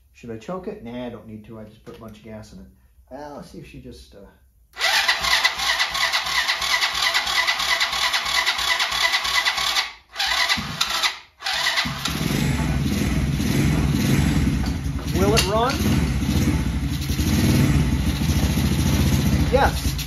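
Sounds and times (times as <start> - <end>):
electric starter cranking engine: 4.8 - 20.0
engine idling: 11.7 - 20.0.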